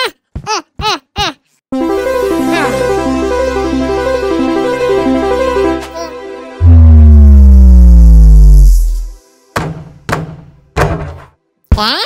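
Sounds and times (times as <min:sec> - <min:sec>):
falling synthesized tone: 0:06.6 - 0:09.2.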